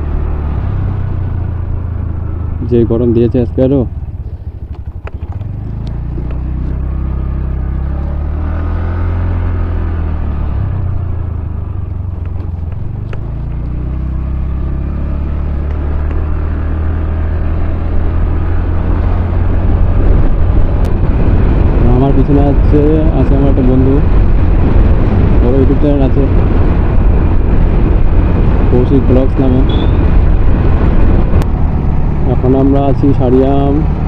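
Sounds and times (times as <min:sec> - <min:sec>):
scooter engine running: 0:03.9 - 0:08.4.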